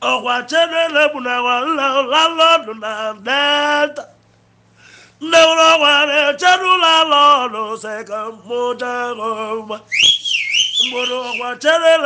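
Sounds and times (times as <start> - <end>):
man singing: 0.0 - 4.2, 5.2 - 10.0, 10.8 - 12.0
high wavering whistle: 9.9 - 11.6.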